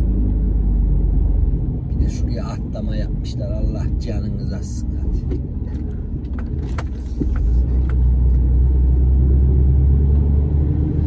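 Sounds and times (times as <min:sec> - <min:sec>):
road noise: 0:00.0 - 0:11.0
truck diesel engine rumble: 0:00.0 - 0:11.0.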